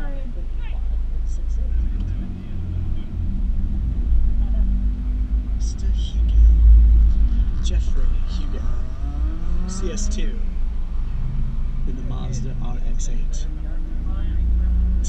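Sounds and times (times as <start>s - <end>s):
car engine low rumble: 0.0s - 15.0s.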